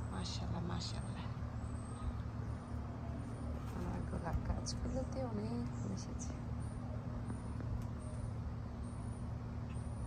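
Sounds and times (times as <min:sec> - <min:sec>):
low rumbling hum: 0:00.0 - 0:10.0.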